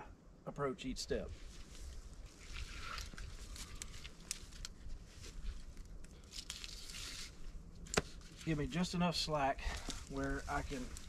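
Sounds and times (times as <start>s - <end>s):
rustling of straps and clothing: 1.3s - 8.8s, 9.6s - 11.0s.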